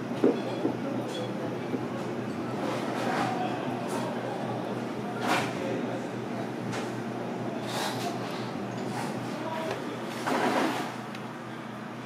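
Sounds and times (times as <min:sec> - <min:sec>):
low kitchen machine hum: 0:00.0 - 0:12.0.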